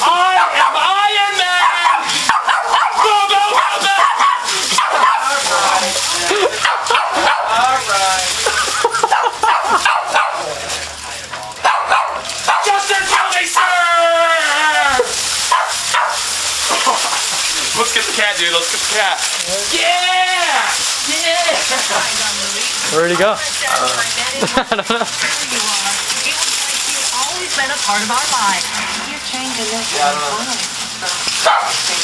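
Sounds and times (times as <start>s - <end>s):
foil rustling and crinkling: 0.0s - 32.0s
small dog barking and yipping: 0.3s - 0.9s, 1.5s - 5.7s, 6.6s - 7.6s, 9.0s - 10.4s, 11.6s - 13.4s, 15.4s - 16.3s, 31.4s - 31.8s.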